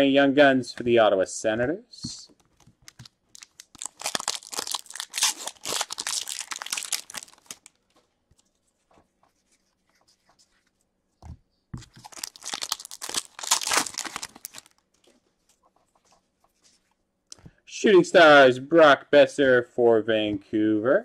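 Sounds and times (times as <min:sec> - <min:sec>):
foil wrappers crinkling and tearing: 0:02.8 - 0:07.8, 0:11.9 - 0:14.8.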